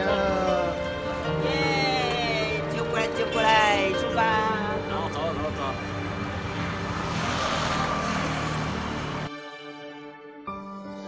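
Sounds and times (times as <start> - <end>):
motor vehicles passing: 0.0 - 9.3.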